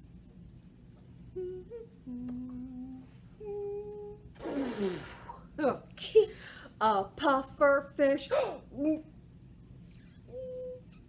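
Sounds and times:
person humming a tune: 1.3 - 5.2, 10.3 - 10.9.

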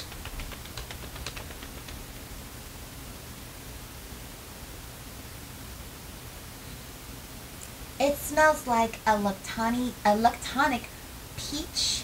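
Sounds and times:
hands tapping paper strip: 0.0 - 2.4.

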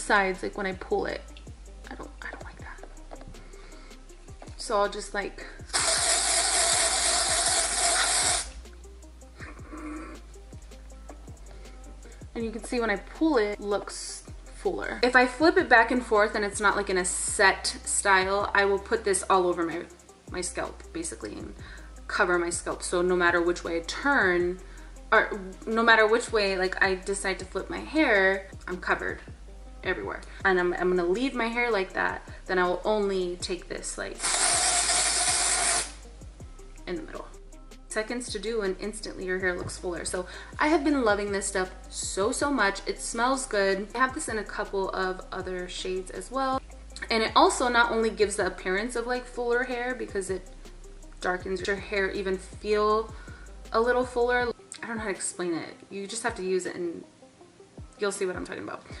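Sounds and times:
aerosol can spraying hiss: 5.6 - 8.6, 34.1 - 36.0.

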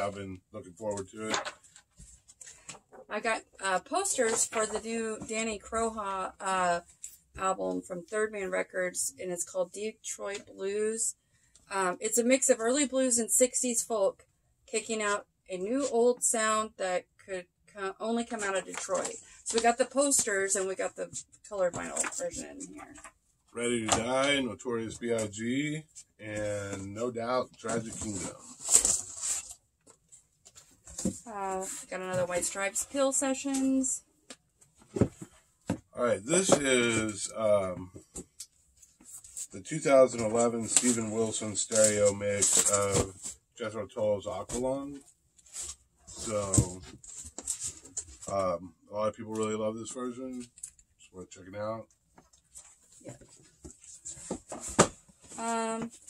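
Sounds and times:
rustling of record sleeves: 18.1 - 20.9, 26.4 - 33.9, 38.8 - 43.4, 44.3 - 48.4.

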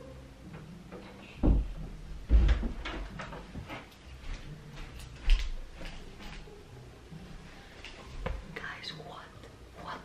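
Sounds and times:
heavy dull thump: 1.4 - 2.9.

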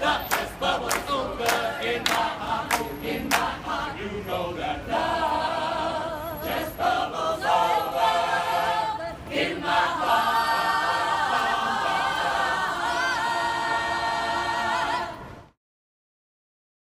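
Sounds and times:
mixed choir singing a cappella: 0.0 - 15.6.

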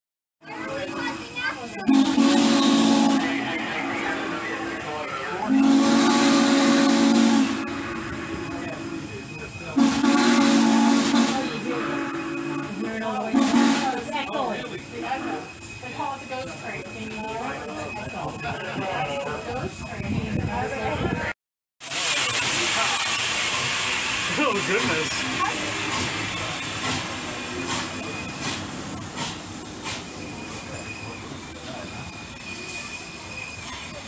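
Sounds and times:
train running: 0.4 - 34.0
steam whistle blasts: 1.8 - 4.4, 5.4 - 14.1
hiss of steam: 21.8 - 31.3.

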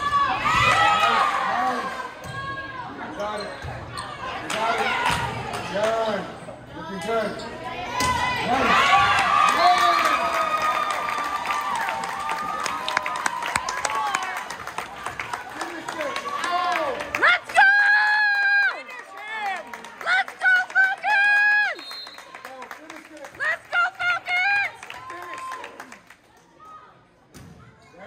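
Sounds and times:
spectators cheering and clapping: 8.2 - 26.6.

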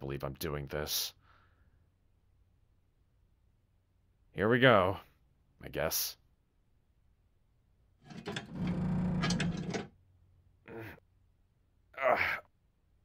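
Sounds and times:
man grunting: 10.7 - 11.0, 12.0 - 12.5.

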